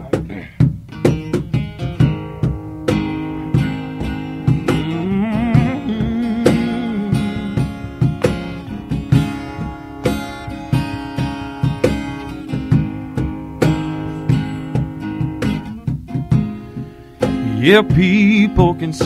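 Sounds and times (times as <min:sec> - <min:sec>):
acoustic guitar chords: 0:00.0 - 0:19.0.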